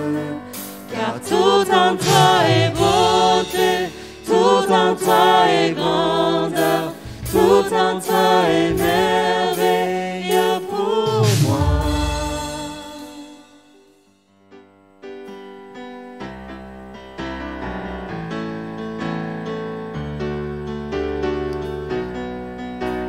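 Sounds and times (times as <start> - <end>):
group singing worship song: 0.0 - 13.7
electric keyboard chords: 0.0 - 23.0.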